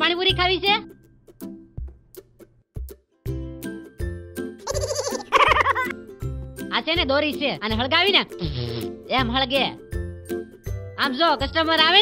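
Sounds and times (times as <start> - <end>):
wavering bleat-like cries: 4.6 - 5.3.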